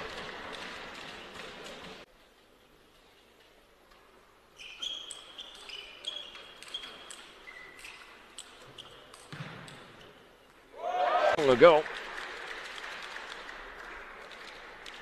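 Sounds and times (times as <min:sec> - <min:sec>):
shoe soles squeaking on floor: 0:04.5 - 0:09.3
crowd noise: 0:10.7 - 0:15.0.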